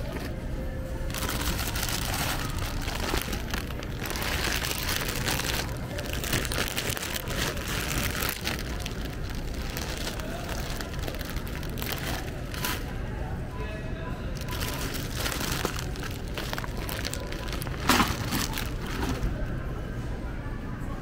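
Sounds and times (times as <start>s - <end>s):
steady low rumble: 0.0s - 19.8s
plastic candy bags crinkling: 1.1s - 13.0s, 14.3s - 19.3s.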